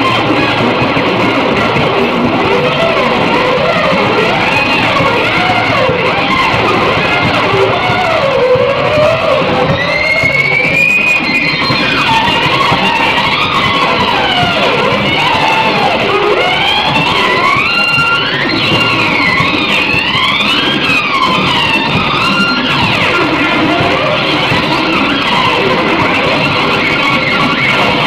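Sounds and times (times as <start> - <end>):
sliding lead guitar: 0.0 - 28.0.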